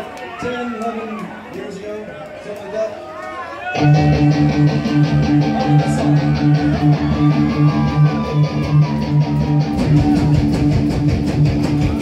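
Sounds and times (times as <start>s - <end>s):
crowd noise: 0.0s - 12.0s
punk rock band playing: 3.8s - 12.0s.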